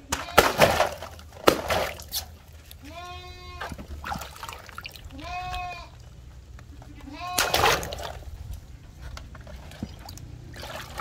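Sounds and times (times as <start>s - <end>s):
goat bleating: 0.0s - 0.7s, 2.8s - 3.8s, 5.1s - 6.0s, 6.7s - 7.8s
water balloons splashing: 0.0s - 2.9s, 3.5s - 6.2s, 7.2s - 8.7s, 9.4s - 11.0s.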